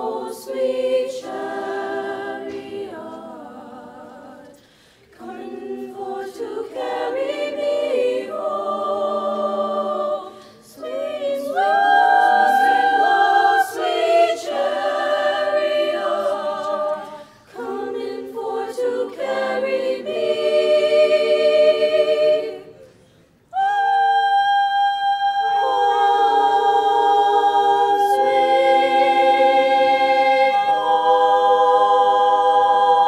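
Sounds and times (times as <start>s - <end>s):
women's choir singing a cappella: 0.0s - 33.0s.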